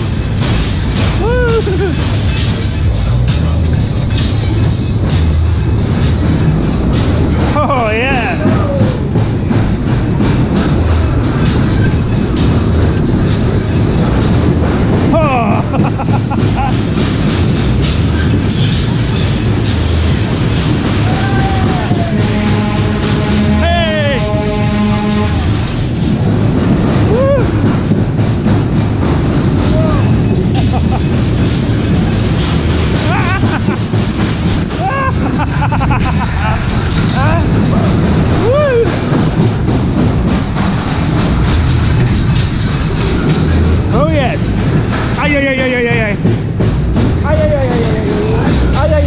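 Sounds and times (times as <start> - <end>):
loud ride music: 0.0 - 49.0
ride cars rumbling on track: 0.0 - 49.0
people whooping: 1.2 - 2.0, 8.2 - 9.2, 21.0 - 22.7, 27.1 - 27.6, 34.8 - 35.4, 37.7 - 39.2.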